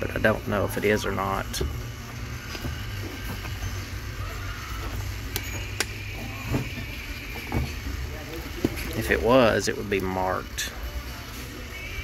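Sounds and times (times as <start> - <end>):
faint music: 0.0 - 12.0
steady low hum: 0.0 - 12.0.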